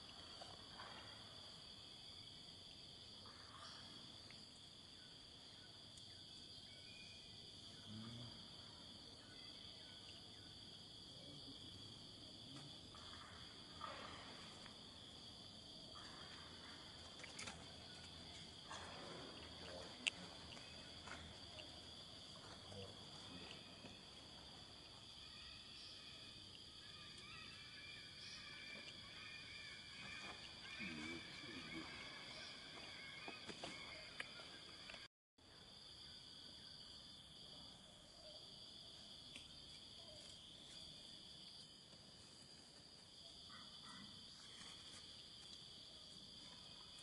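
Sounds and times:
high-pitched insect chorus: 0:00.0 - 0:47.0.

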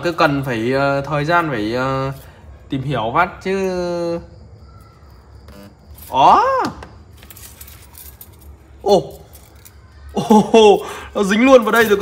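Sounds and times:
metallic clinking: 0:04.6 - 0:10.5.

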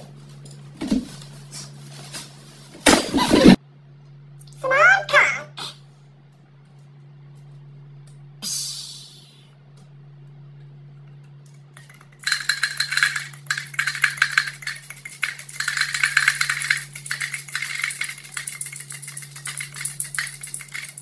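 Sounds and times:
steady low hum: 0:00.0 - 0:21.0
hard candies rattling: 0:11.8 - 0:21.0.

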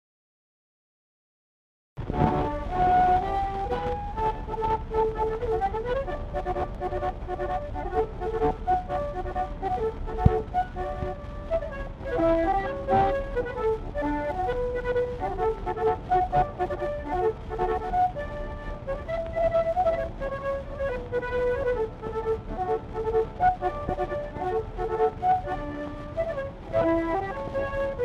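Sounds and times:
record surface hiss and crackle: 0:02.0 - 0:28.0
concertinas playing a march: 0:02.2 - 0:28.0.

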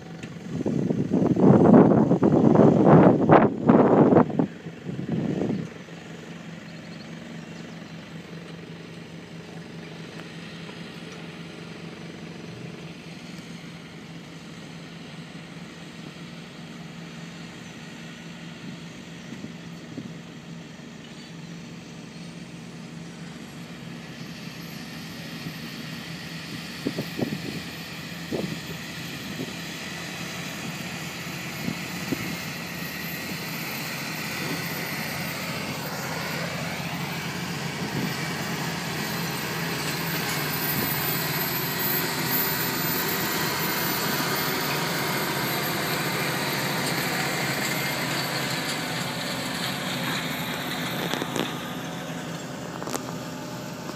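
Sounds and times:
tractor diesel engine under load: 0:00.0 - 0:53.9.

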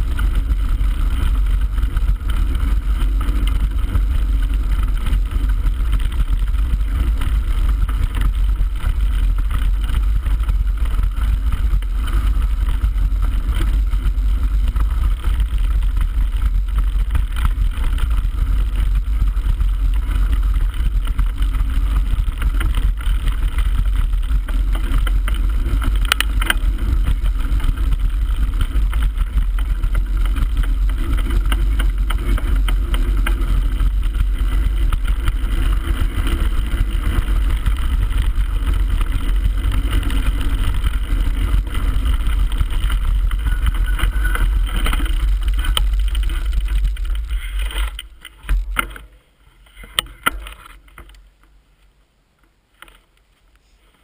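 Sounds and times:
tyres rolling over gravel: 0:00.0 - 0:51.7.

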